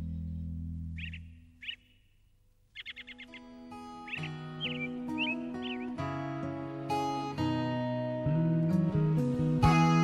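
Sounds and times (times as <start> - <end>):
birds chirping: 0.0 - 6.3
soft music: 3.0 - 10.0.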